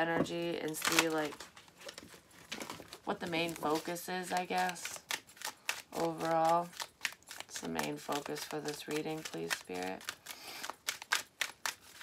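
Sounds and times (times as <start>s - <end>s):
cards rustling: 0.6s - 12.0s
cards snapping while shuffled: 3.6s - 12.0s.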